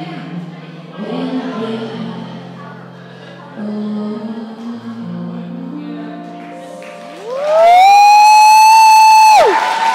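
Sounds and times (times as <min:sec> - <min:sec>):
applause: 0:06.4 - 0:09.9
loud whooping cheer: 0:07.2 - 0:09.9.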